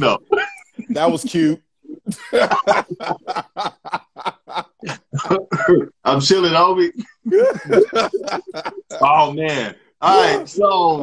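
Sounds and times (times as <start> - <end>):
men laughing: 0.0 - 6.0, 6.9 - 9.3.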